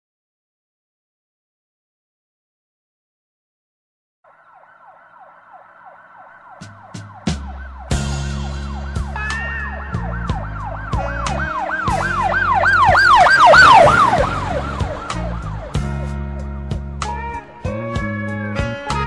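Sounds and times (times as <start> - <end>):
siren wail effect: 4.3 - 16.4
music with bass and beat: 6.6 - 19.0.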